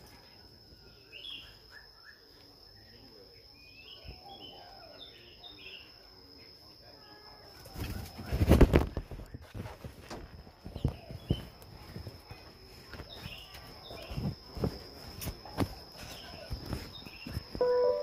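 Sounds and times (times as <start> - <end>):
faint bird chirps: 0.0 - 9.8, 10.4 - 18.0.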